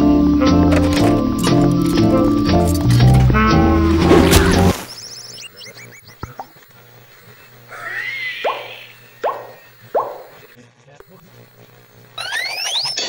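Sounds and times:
cartoon swooping sound: 0:07.7 - 0:10.2
cartoon boing hits: 0:07.9 - 0:10.4.

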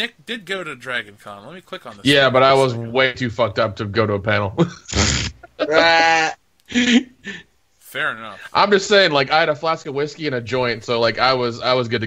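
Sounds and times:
man laughing: 0:04.6 - 0:07.4.

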